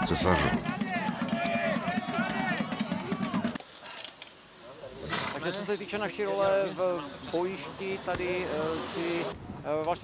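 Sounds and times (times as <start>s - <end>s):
men's voices: 0.0s - 4.0s, 4.6s - 10.0s
horse snorting: 4.9s - 5.4s
man speaking: 5.4s - 10.0s.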